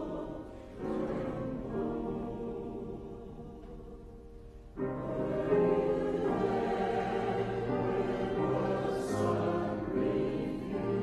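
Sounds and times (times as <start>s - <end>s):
choir singing a hymn: 0.0s - 11.0s.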